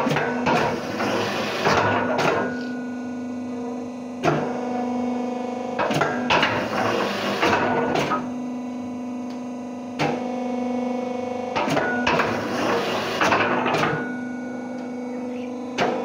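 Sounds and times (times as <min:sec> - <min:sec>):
brick press clunks: 0:00.0 - 0:02.8, 0:11.6 - 0:14.1
machine hum: 0:00.0 - 0:16.0.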